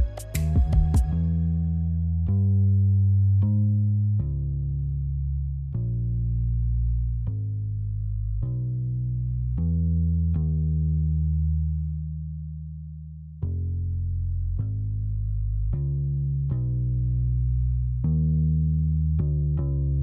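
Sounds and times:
low plucked notes: 0.0 - 20.0.

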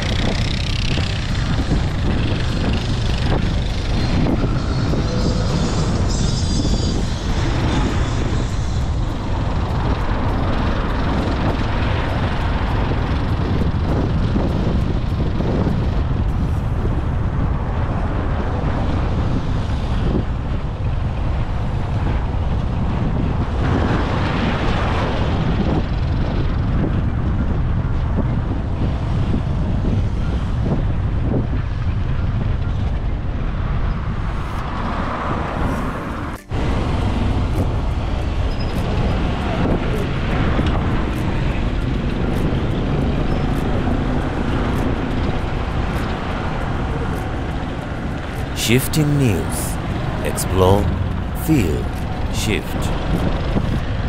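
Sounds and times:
road traffic rumble: 0.0 - 20.1, 33.5 - 54.0
wind buffeting microphone: 0.0 - 48.6.

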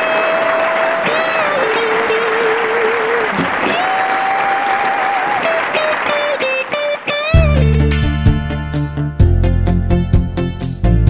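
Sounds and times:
crowd applause: 0.0 - 7.4
long held wavering musical notes: 7.4 - 9.8.

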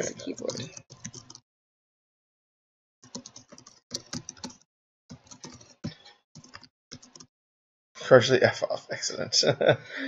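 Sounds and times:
computer keyboard typing: 0.0 - 1.4, 3.0 - 7.3.

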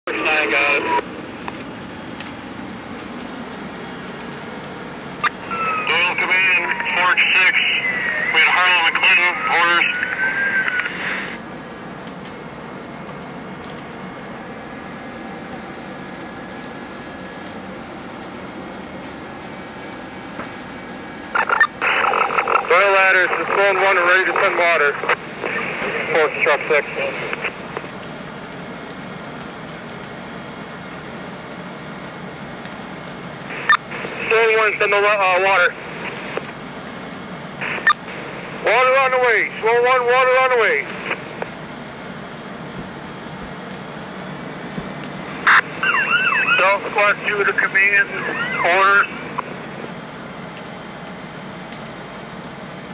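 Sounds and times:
man's voice over two-way radio: 0.1 - 1.0, 5.5 - 11.4, 21.4 - 27.6, 33.9 - 36.4, 38.6 - 41.2, 45.5 - 49.4
building burning: 0.1 - 52.9
fire engine running: 0.1 - 52.9.

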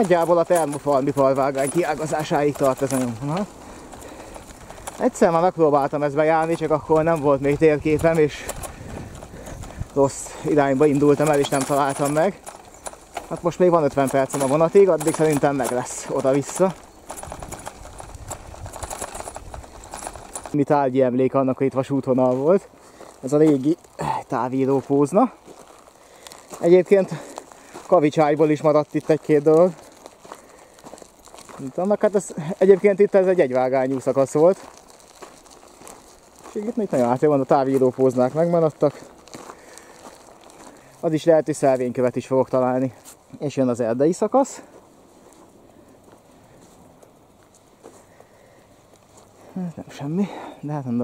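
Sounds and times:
tyres crunching on grit: 0.0 - 20.7, 22.0 - 45.5
bicycle rattling: 0.0 - 20.8, 22.0 - 51.0
wind rumble on microphone: 6.8 - 10.1, 17.1 - 20.5.

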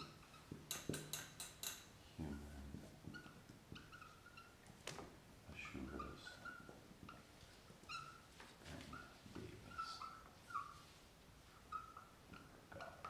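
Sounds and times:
marker squeaking on board: 0.0 - 1.0, 2.3 - 4.7, 5.6 - 10.9, 11.5 - 13.0.

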